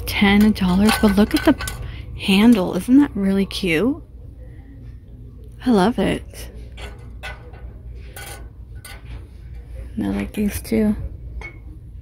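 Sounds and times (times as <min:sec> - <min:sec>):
low background hum: 0:00.0 - 0:12.0
glass and ceramic mugs clinking: 0:00.2 - 0:02.0.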